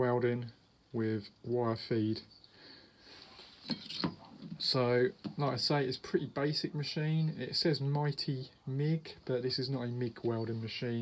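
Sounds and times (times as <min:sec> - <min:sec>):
man speaking: 0:00.0 - 0:02.3, 0:04.5 - 0:11.0
faint rustling: 0:02.4 - 0:05.8.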